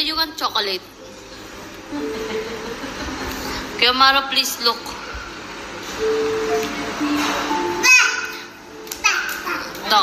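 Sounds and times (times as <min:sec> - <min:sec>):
child crying out: 0:07.8 - 0:09.7
child talking: 0:07.8 - 0:10.0.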